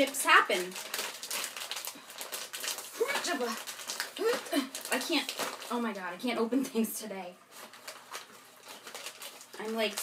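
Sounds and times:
plastic chip bag crinkling: 0.0 - 6.2, 7.5 - 10.0.

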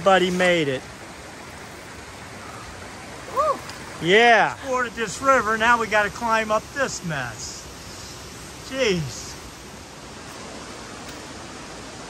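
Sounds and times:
fast-flowing river rushing: 0.0 - 12.0
voiced exclamation: 3.3 - 5.8.

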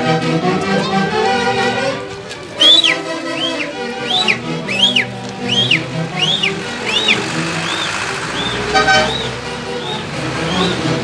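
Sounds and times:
folk band playing: 0.0 - 11.0
car horn toot: 2.6 - 11.0.

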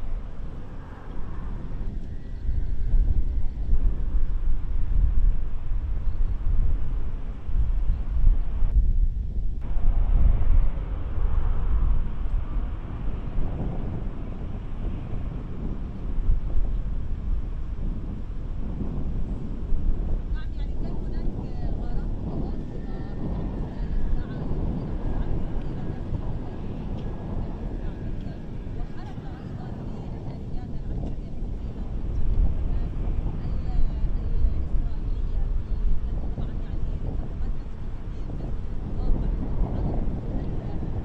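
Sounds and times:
low uneven outdoor rumble: 0.0 - 41.0.

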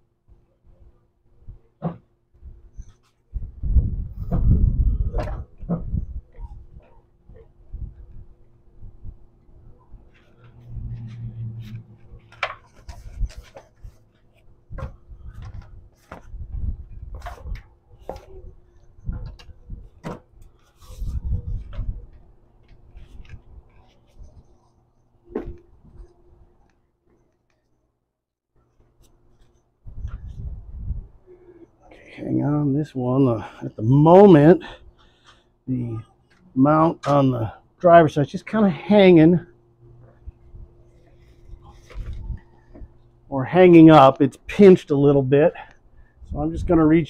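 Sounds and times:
metal scraping: 10.2 - 13.6
faint steady hum: 28.6 - 47.0.

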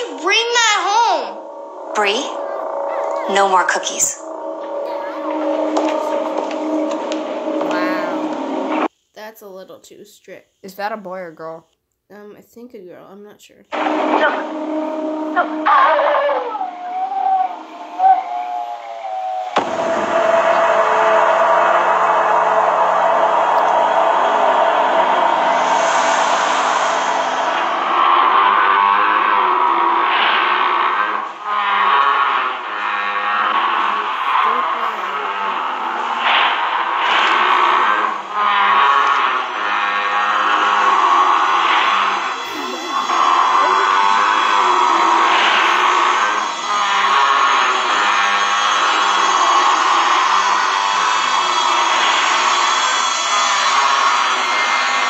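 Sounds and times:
horror film music: 0.0 - 8.9, 13.7 - 55.0
steady low tone: 0.0 - 8.9, 13.7 - 48.6.

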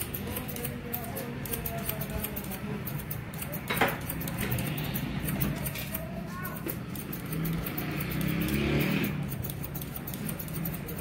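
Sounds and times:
scissors snipping hair: 0.0 - 11.0
vehicle engine passing: 6.8 - 11.0.

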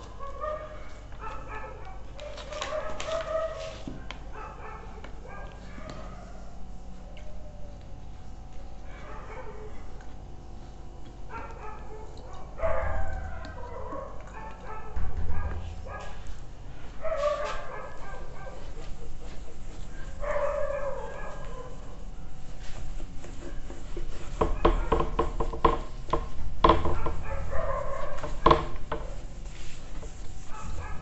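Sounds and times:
low thumps: 14.9 - 16.4.

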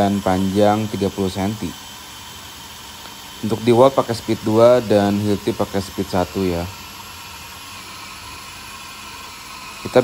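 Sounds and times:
cordless drills boring into wood: 0.0 - 10.0.

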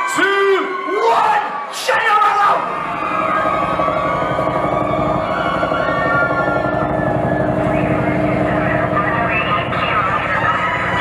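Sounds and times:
fast low pulsing: 2.6 - 11.0
held tones gliding in pitch: 2.6 - 11.0.

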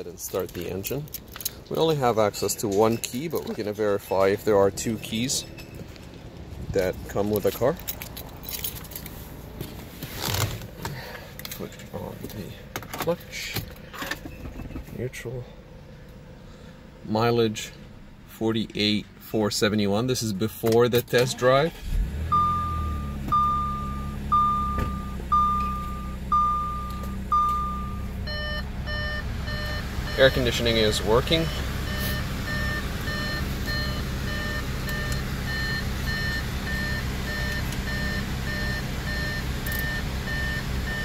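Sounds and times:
rustling in a car seat: 8.4 - 12.2
scraping rustle: 8.8 - 10.9
car engine idling: 21.3 - 41.0
car warning chime beeping: 22.2 - 41.0.

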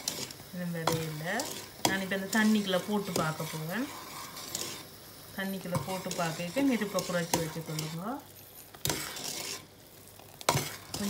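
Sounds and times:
metal spoon scraping pan: 0.0 - 11.0
syrup bubbling in saucepan: 0.0 - 11.0.

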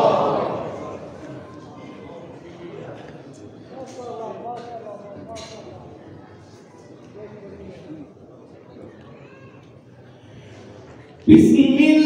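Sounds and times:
low murmur of crowd: 0.0 - 12.0.

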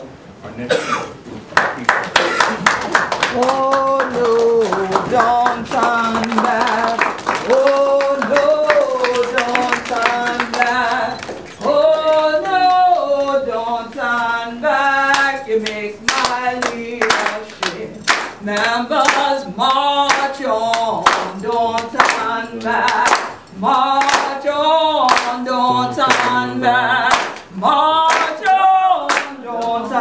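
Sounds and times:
hands clapping in rhythm: 1.6 - 12.6, 15.1 - 29.9
woman singing unaccompanied: 3.2 - 30.0.

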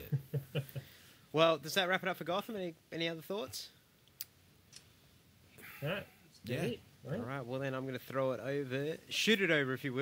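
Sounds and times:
man speaking: 5.7 - 10.0.

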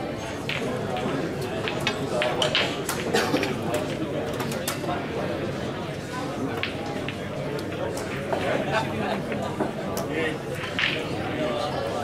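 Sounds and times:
murmur of voices: 0.0 - 12.0
pool balls clicking: 0.1 - 5.2, 6.2 - 12.0.

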